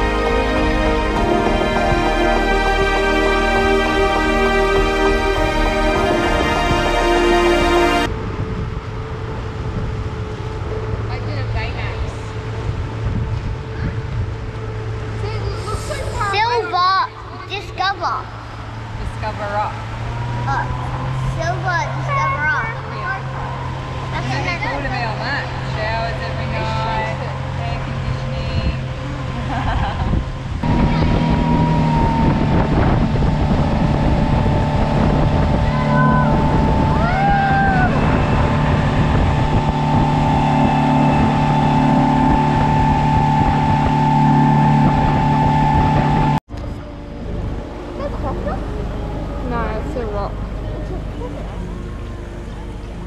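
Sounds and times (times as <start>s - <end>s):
water rushing off hull: 0.0s - 46.4s
motorboat engine running: 0.0s - 53.0s.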